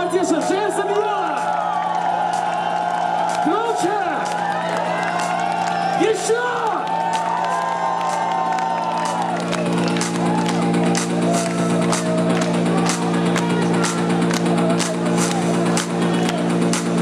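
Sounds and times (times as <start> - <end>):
crowd whooping and cheering: 0.0 - 17.0
electronic music with synth chord: 0.0 - 17.0
regular ticking beat: 8.9 - 17.0.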